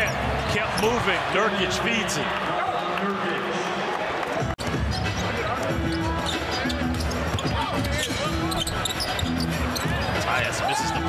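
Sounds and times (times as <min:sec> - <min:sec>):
crowd noise: 0:00.0 - 0:11.0
sneaker squeaks: 0:04.9 - 0:10.3.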